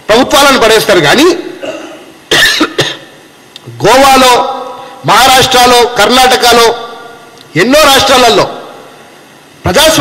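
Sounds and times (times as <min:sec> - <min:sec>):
man coughing: 0:01.6 - 0:03.1.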